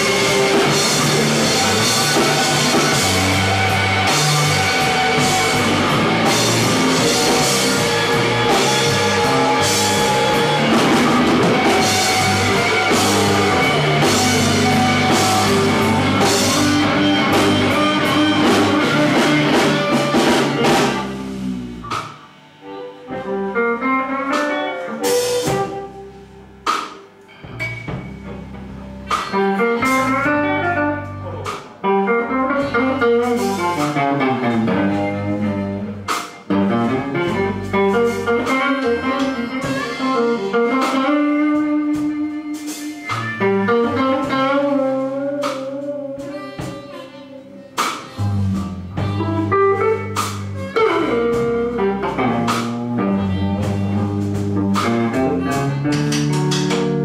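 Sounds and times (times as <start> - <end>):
bending electric guitar lines: 0.0 - 57.0
live blues band: 0.0 - 57.0.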